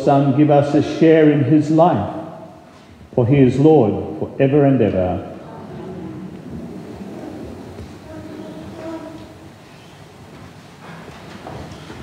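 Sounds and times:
microphone rumbling and rustling: 5.3s - 12.0s.

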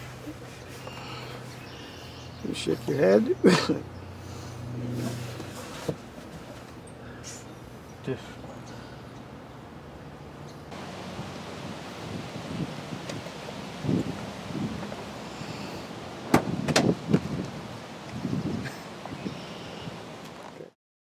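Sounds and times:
background hiss: 0.0s - 16.4s
person shuffling in car seat: 4.8s - 6.8s.

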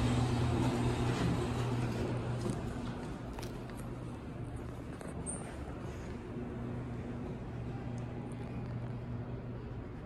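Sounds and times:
elevator low hum: 0.0s - 10.0s.

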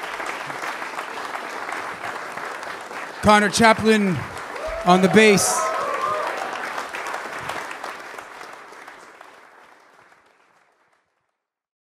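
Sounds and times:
audience applauding: 0.0s - 11.3s.

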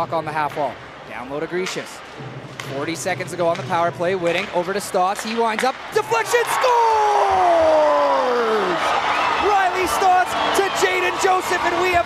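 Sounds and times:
crowd cheering: 5.7s - 12.0s.

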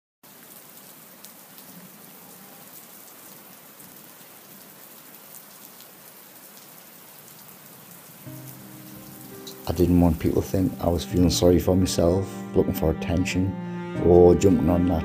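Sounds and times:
steady rain hiss: 0.2s - 12.5s.

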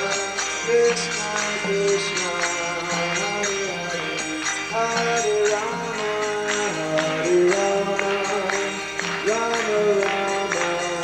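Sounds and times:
hand cymbals ringing: 0.0s - 11.0s
sustained harmonium notes: 0.0s - 11.0s.

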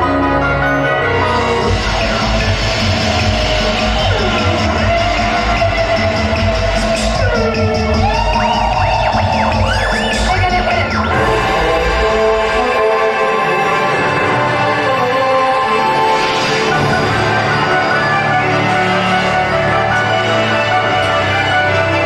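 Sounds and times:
film soundtrack music: 0.0s - 22.0s
sweeping tones rising and falling: 1.0s - 21.0s.

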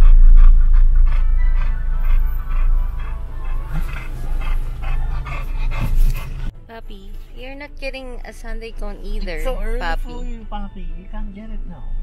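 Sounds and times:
dog panting: 0.0s - 6.5s
car rumble: 0.0s - 10.7s
background music: 0.1s - 12.0s.

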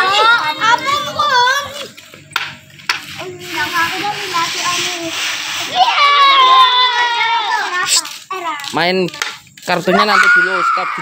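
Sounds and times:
children chattering: 0.0s - 2.3s, 3.1s - 11.0s.

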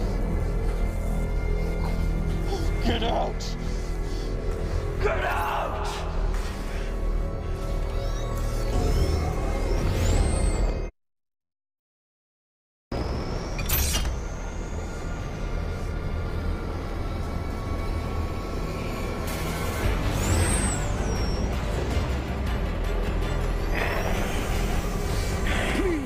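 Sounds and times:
tense film score: 0.0s - 11.0s, 12.9s - 26.0s.

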